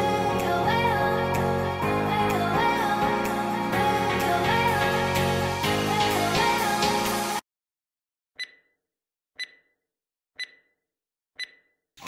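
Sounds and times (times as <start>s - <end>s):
sharp ticks with ringing tone: 9.4s - 9.7s, 10.4s - 10.8s, 11.4s - 11.8s.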